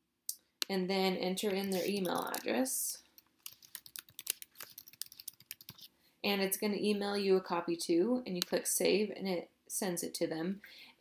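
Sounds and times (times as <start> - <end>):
computer keyboard typing: 1.5 - 2.5, 3.2 - 5.9.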